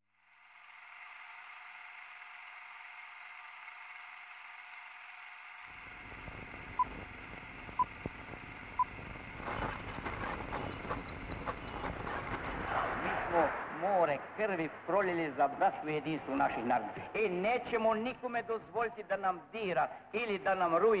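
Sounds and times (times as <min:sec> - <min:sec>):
crackle: 0:00.1 - 0:16.3
recording hiss: 0:05.7 - 0:21.0
low rumble: 0:06.7 - 0:17.0.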